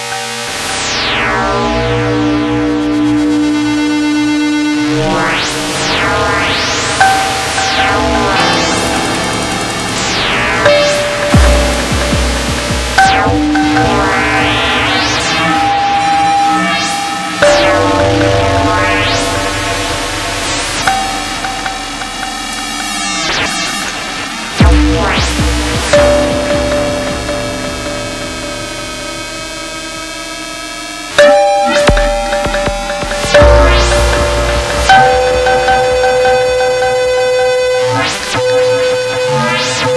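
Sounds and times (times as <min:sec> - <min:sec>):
kalimba through synthesizer: 0:05.3 - 0:16.4, 0:17.2 - 0:23.7, 0:24.6 - 0:28.8, 0:31.1 - 0:38.7
plucked note with low thump: 0:31.8 - 0:36.7.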